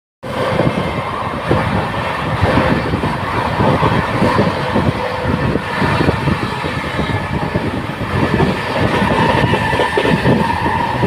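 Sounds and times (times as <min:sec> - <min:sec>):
train wheels rumbling on track: 0:00.2 - 0:11.0
wind on microphone: 0:00.3 - 0:11.0.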